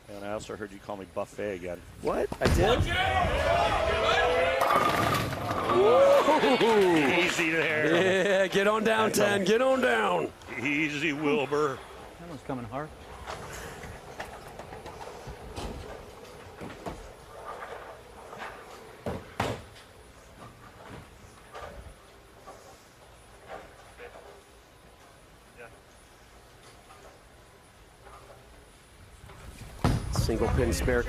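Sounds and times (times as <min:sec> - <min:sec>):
bowling balls and pins knocking: 0:04.6 - 0:05.9.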